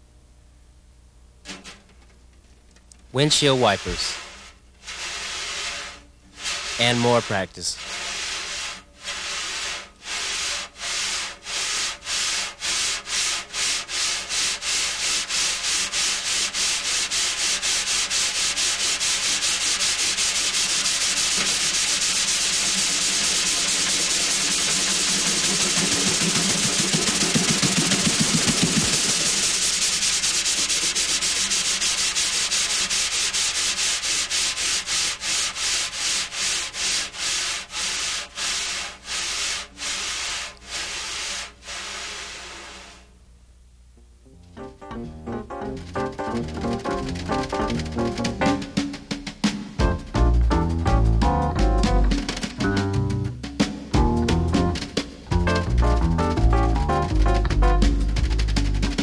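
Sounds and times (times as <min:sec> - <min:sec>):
wire brushes sweeping snare drum: 0:03.1 - 0:43.1, 0:45.6 - 0:59.0.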